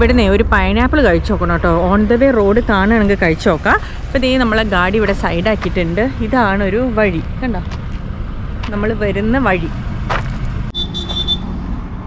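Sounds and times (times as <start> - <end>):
steady low rumble: 0.0 - 10.7
high electronic beep: 10.7 - 11.5.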